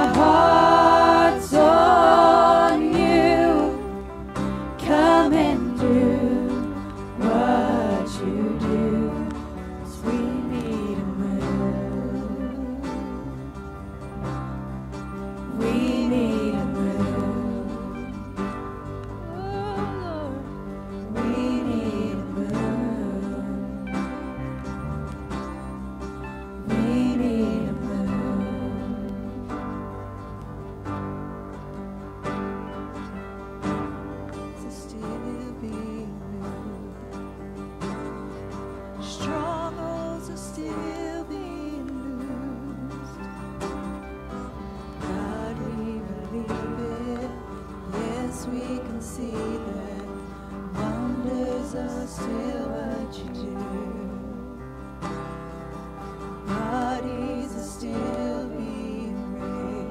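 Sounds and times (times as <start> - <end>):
woman singing: 0.0 - 13.5, 15.5 - 18.5, 19.2 - 24.4, 26.6 - 29.8, 34.6 - 37.3, 39.0 - 43.3, 45.0 - 54.7, 56.5 - 59.9
acoustic guitar strumming: 0.0 - 59.9
sustained keyboard chords: 0.0 - 59.9.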